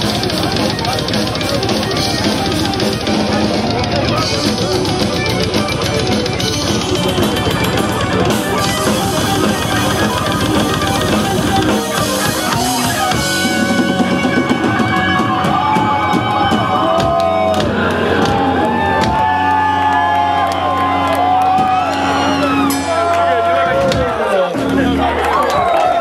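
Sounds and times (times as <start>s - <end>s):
fast dense drumming: 0.0s - 19.8s
distorted electric guitar: 0.0s - 26.0s.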